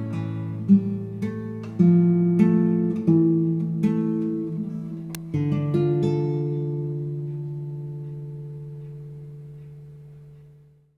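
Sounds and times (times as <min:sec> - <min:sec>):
guitar chord ringing out: 0:00.0 - 0:10.6.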